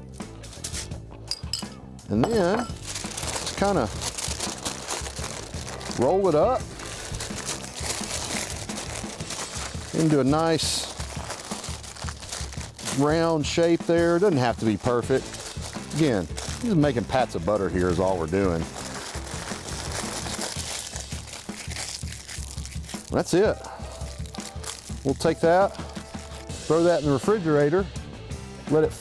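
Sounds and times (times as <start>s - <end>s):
wax paper crinkling: 2.2s - 27.2s.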